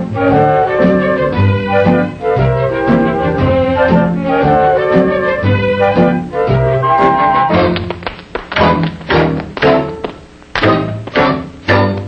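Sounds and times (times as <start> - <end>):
dance band music: 0.0 - 12.0
shoes tapping on stage floor: 7.4 - 12.0.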